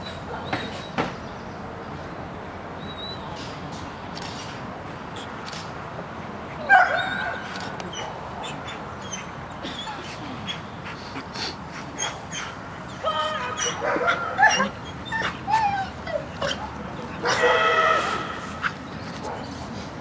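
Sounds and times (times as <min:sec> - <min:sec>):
dog whining and yipping: 0:12.0 - 0:17.4.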